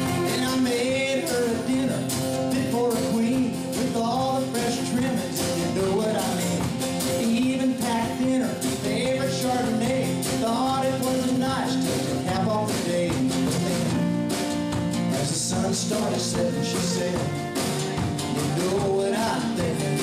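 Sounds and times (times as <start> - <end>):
fiddle: 0.0 - 2.1, 13.8 - 20.0
strummed acoustic guitar: 0.0 - 20.0.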